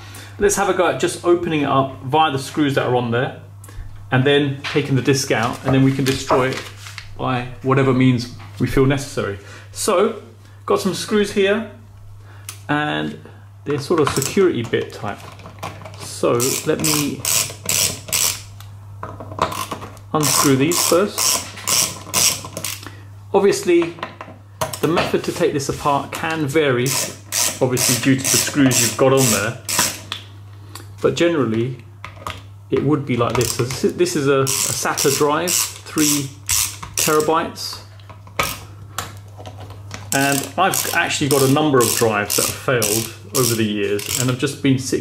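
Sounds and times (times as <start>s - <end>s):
ratchet screwdriver clicking: 16.4s - 18.4s, 19.5s - 22.9s, 26.9s - 30.0s, 34.4s - 37.3s, 40.1s - 44.3s.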